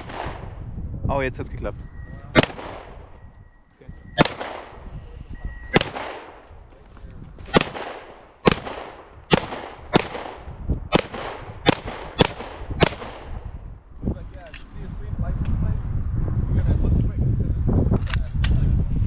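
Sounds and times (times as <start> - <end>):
pistol shots with echo: 0.0 - 0.6, 2.3 - 3.1, 4.2 - 4.9, 5.7 - 6.5, 7.5 - 13.5.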